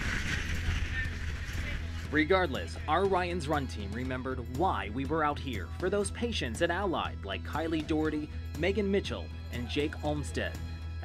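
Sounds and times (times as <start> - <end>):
wind buffeting microphone: 0.0 - 2.1.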